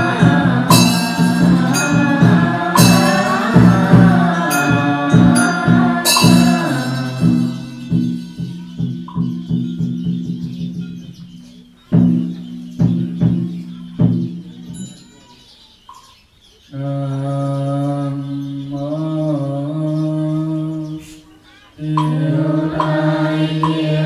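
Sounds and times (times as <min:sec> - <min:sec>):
voices chanting long note: 0:00.0 - 0:08.9, 0:16.7 - 0:24.0
ritual percussion strikes ringing: 0:00.0 - 0:16.3, 0:21.8 - 0:24.0.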